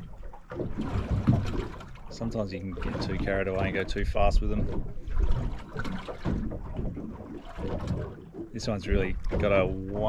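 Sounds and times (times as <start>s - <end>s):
water lapping against boat hull: 0.0s - 10.0s.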